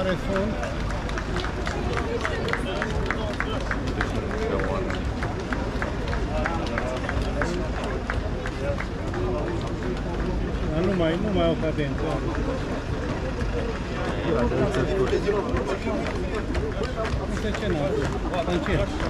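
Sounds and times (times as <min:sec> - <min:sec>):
spectators talking: 0:00.0 - 0:19.0
boots marching on stone paving: 0:07.9 - 0:19.0.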